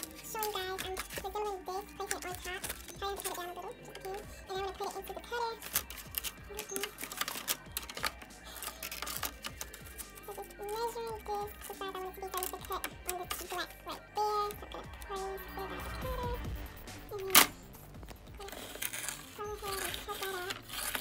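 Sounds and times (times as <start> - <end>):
music with sung melody: 0.0 - 21.0.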